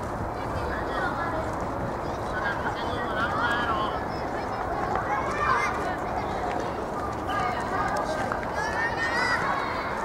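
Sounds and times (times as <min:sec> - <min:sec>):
steady background noise: 0:00.0 - 0:10.0
child shouting: 0:05.1 - 0:05.8, 0:08.6 - 0:10.0.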